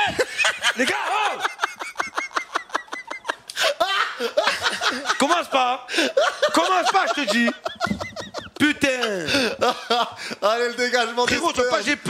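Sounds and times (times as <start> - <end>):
man laughing: 0.0 - 10.4.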